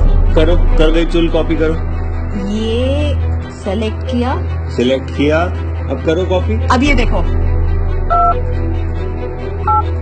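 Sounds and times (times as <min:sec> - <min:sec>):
touch-tone keypad beeps: 0:08.1 - 0:08.4, 0:09.7 - 0:09.9.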